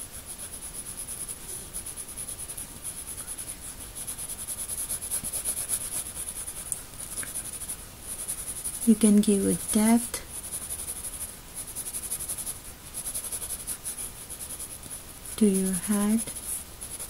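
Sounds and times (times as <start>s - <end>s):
pencil shading on paper: 0.0s - 17.0s.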